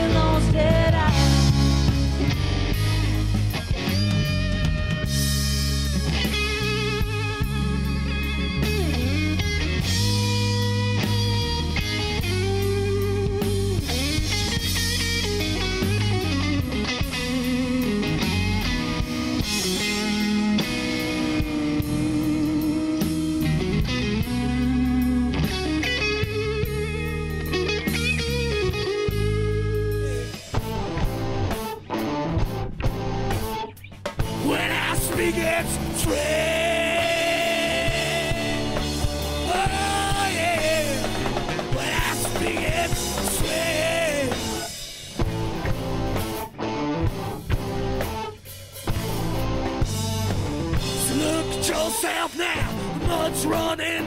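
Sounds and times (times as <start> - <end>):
bass and drums: 0.0 - 54.0
electric guitar lead lines: 0.0 - 54.0.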